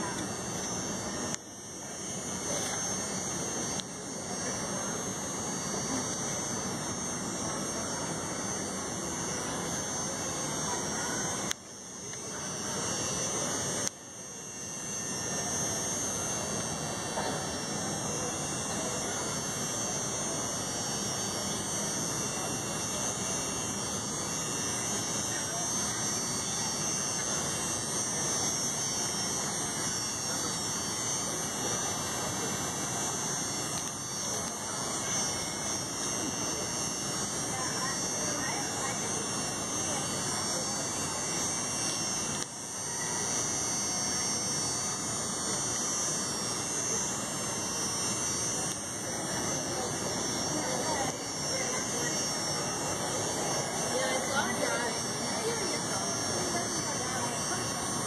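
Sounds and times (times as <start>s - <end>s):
crowd chatter: 0.0s - 58.0s.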